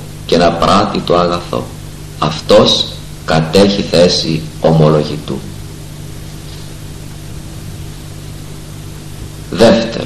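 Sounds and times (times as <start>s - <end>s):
low electrical hum: 0.0s - 10.0s
steady hiss: 0.0s - 10.0s.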